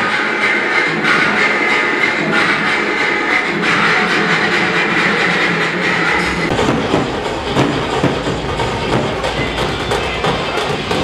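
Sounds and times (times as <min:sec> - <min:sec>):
crowd noise: 0:00.0 - 0:11.0
procession music: 0:00.0 - 0:11.0
large drums beating: 0:03.6 - 0:11.0.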